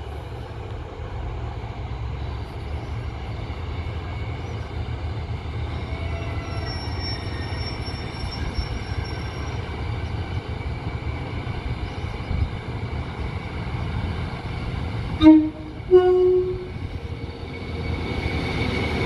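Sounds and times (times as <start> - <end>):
high-pitched wheel squeal: 5.8 - 9.7.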